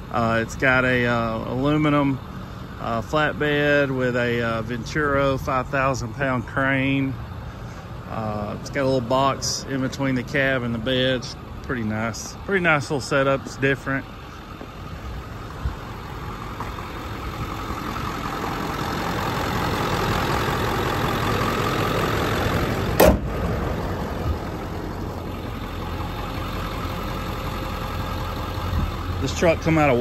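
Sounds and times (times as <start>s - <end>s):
diesel engine idling: 0.0s - 30.0s.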